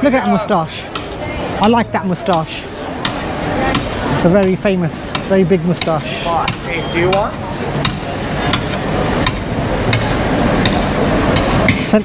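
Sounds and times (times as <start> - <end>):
street noise: 0.0 - 12.0
metal paddle knocking on metal tubs: 0.9 - 12.0.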